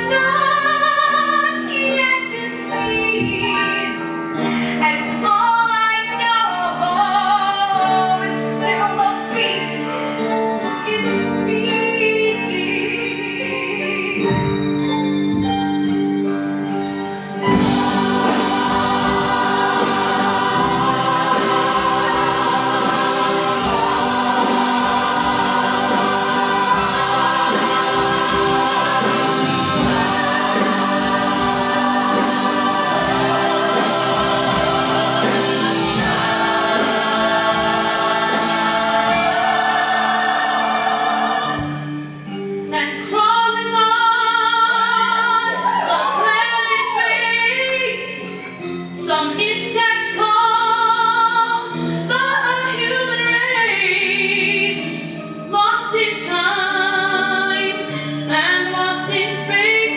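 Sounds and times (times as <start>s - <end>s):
musical accompaniment: 0.0s - 59.9s
voices singing together: 17.5s - 41.8s.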